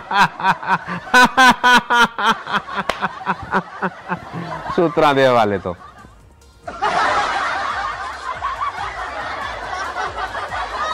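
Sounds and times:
laugh track: 0.0s - 10.9s.

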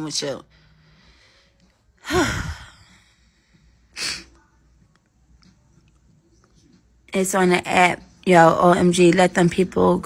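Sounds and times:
woman sighing heavily: 2.0s - 3.0s.

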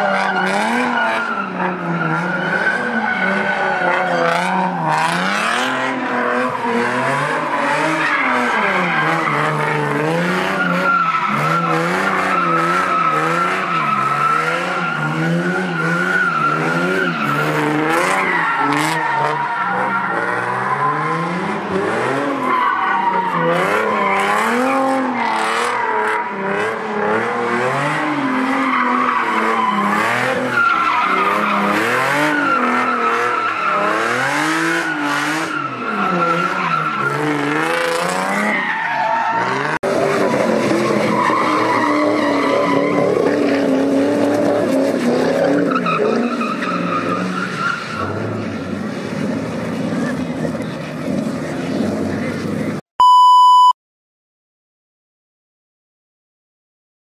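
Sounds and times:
car engines revving: 0.0s - 52.8s.

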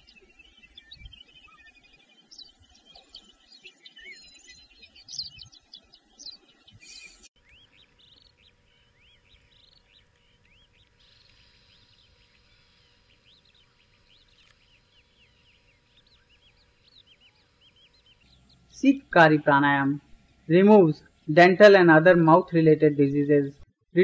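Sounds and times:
small birds chirping: 0.0s - 23.6s
faint steady hum: 0.0s - 24.0s.

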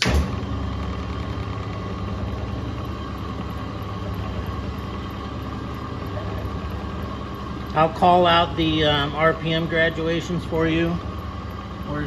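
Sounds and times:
electric drive running: 0.0s - 12.0s.

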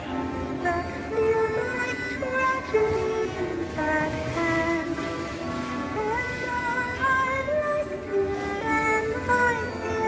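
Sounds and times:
woman singing slow song: 0.6s - 5.2s, 5.9s - 10.0s.

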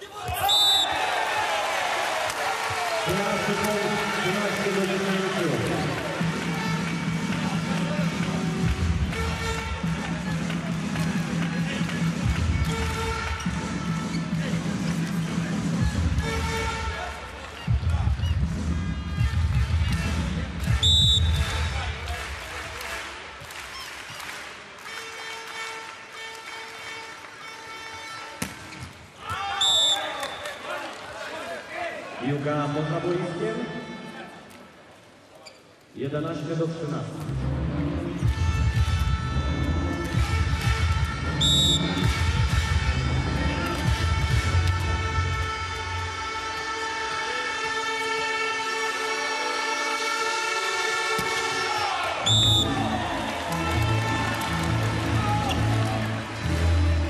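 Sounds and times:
crowd noise: 0.0s - 35.9s, 36.6s - 57.0s
referee whistle blast: 0.3s - 1.0s, 20.8s - 21.8s, 29.6s - 30.4s, 41.4s - 42.0s, 52.2s - 52.9s
loud arena music with bass: 5.4s - 22.3s, 37.3s - 46.5s, 51.0s - 57.0s
volleyball strikes: 51.1s - 51.7s.

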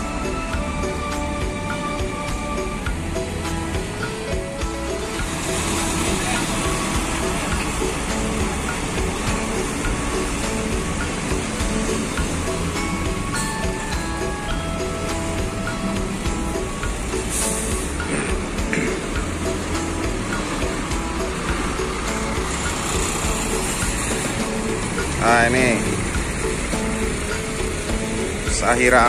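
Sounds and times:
background music: 0.0s - 29.0s
bus engines and traffic: 0.0s - 29.0s.

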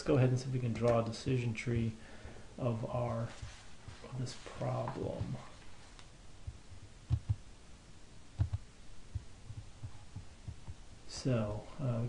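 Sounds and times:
soft low thumps: 6.4s - 7.5s, 8.4s - 10.8s.

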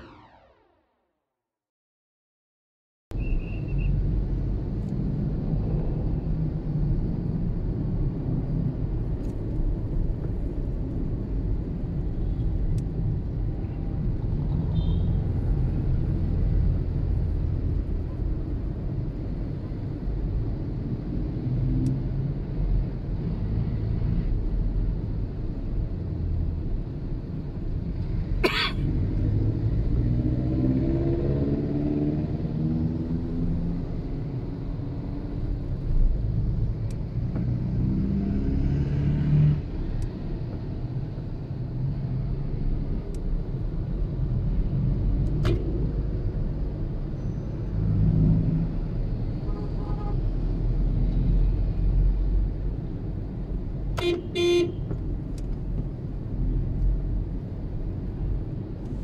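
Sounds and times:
car engine and road rumble: 3.1s - 59.0s
vehicle accelerating: 28.8s - 34.4s, 37.1s - 40.6s
car horn honks: 49.5s - 50.2s, 54.0s - 54.9s.

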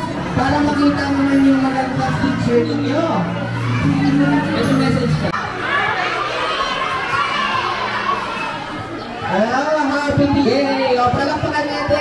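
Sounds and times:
children shouting: 0.0s - 12.0s.

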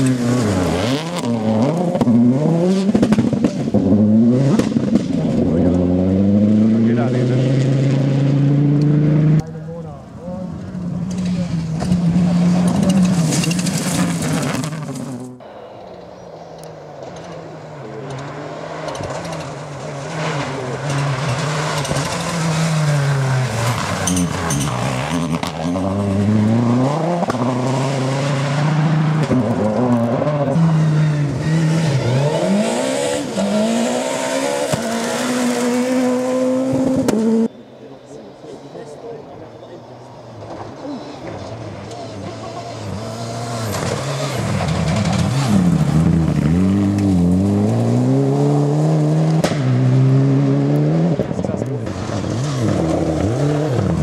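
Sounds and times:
rally car engines revving: 0.0s - 54.0s
rally car passing by: 17.0s - 37.5s, 38.4s - 54.0s.

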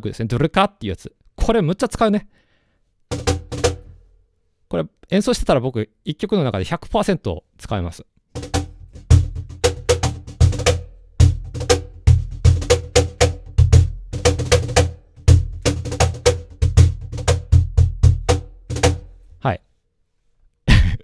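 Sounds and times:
cajon played by hand: 3.1s - 4.0s, 8.4s - 19.2s.

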